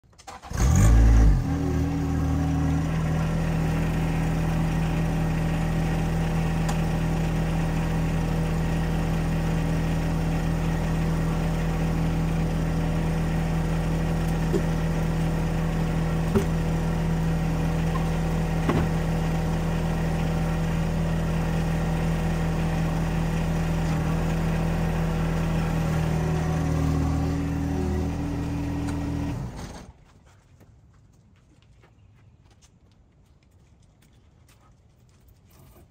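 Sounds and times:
tractor diesel engine running: 0.1s - 30.0s.

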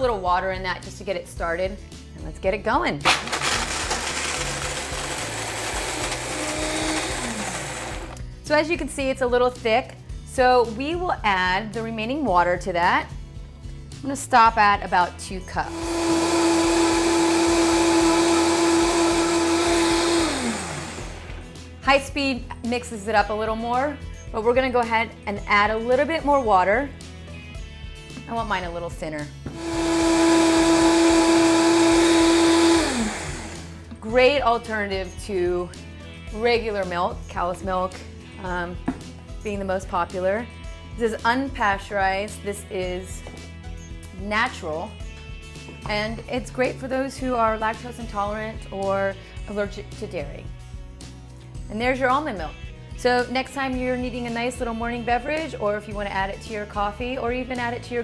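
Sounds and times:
blender running at high speed: 3.1s - 8.2s, 15.6s - 21.5s, 29.5s - 33.8s.

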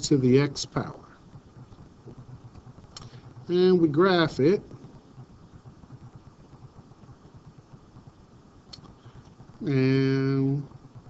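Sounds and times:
light hiss: 0.0s - 11.0s
low irregular rumble: 0.0s - 11.0s.

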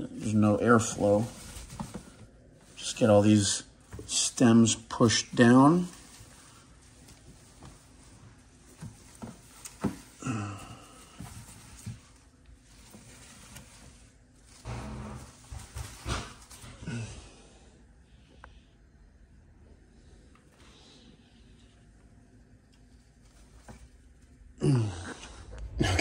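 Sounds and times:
plant stems rustling on plastic: 0.0s - 17.0s, 22.8s - 24.6s.

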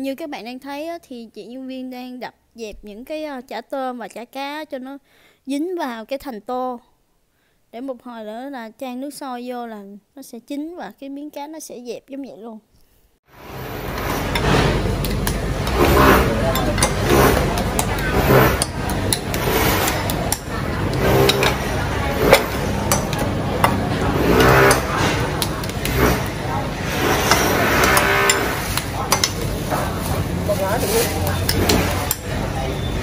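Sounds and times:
spoon scraping ceramic bowls: 13.4s - 33.0s
steady low hum: 13.4s - 33.0s.

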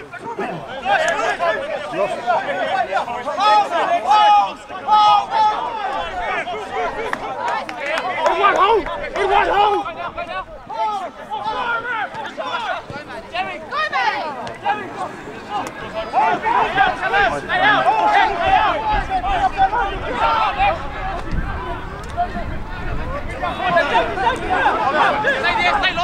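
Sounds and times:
crowd chatter: 0.0s - 26.0s
people shouting: 0.0s - 26.0s.

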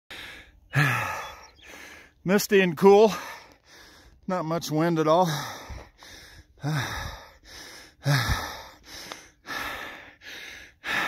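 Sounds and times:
man sighing: 0.1s - 1.9s.

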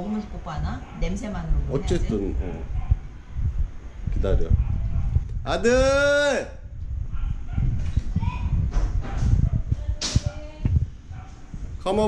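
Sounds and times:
handheld camera rumble: 1.9s - 6.0s, 6.6s - 11.9s
footsteps thumping: 7.2s - 11.8s.

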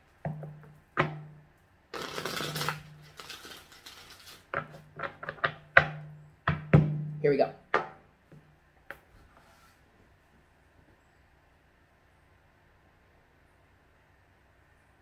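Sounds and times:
cards riffle shuffled: 2.0s - 4.8s.

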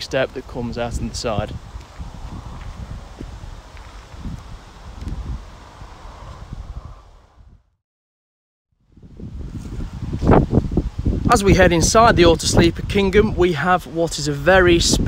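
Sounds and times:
wind noise on microphone: 0.0s - 7.8s, 8.8s - 15.0s.

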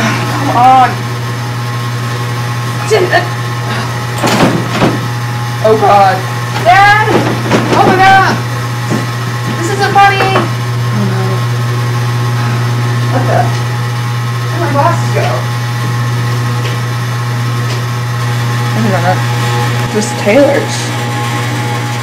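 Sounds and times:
low droning hum: 0.0s - 22.0s.

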